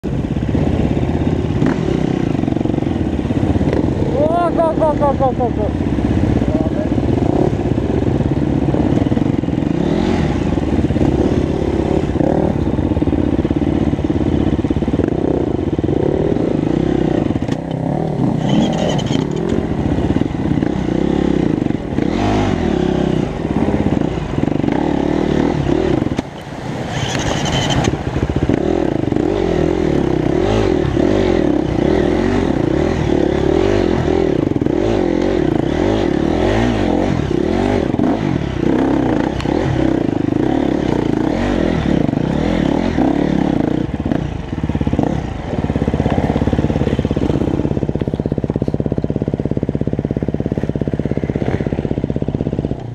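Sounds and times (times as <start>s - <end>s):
dirt bike engine revving: 0.1s - 52.8s.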